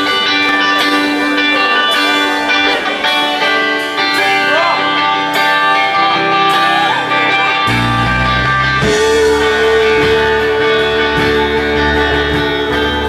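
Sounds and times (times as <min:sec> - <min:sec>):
live rock band playing: 0:00.0 - 0:13.0
ringing electric guitar: 0:00.0 - 0:13.0.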